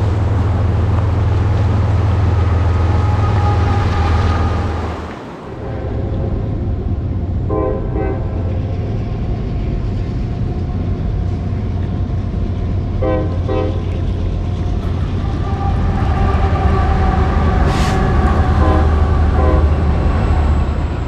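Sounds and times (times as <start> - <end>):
train rumbling past: 0.0 - 21.0
train horn blasts: 2.0 - 4.9, 5.6 - 6.6, 7.4 - 8.5, 13.0 - 14.0, 14.8 - 20.6.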